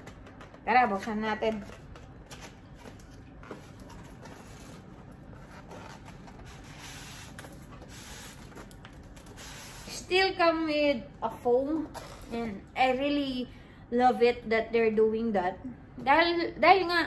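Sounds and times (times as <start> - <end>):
cardboard and foam rubbing: 1.6 - 10.0.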